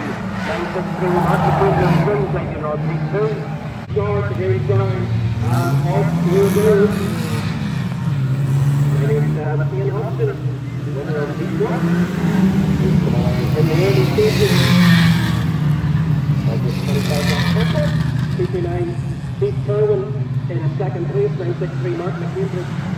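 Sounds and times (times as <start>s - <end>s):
race car engines accelerating: 0.0s - 22.9s.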